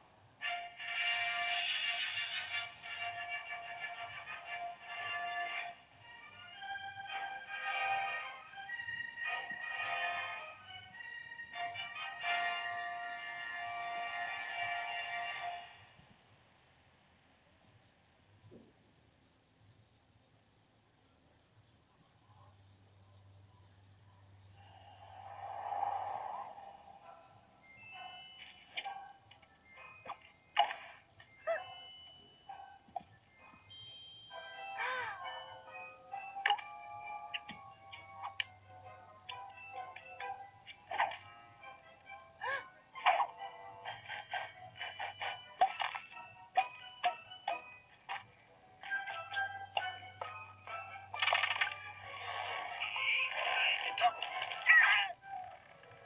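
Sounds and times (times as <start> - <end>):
light cartoon music: 0.0 - 16.4, 21.1 - 56.0
hissing whooshing sound: 24.6 - 27.0.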